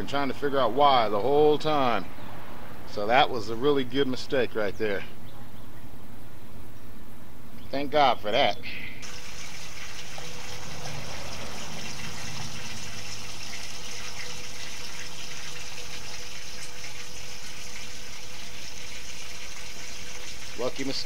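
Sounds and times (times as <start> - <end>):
hose water running into metal tank: 9.0 - 21.0.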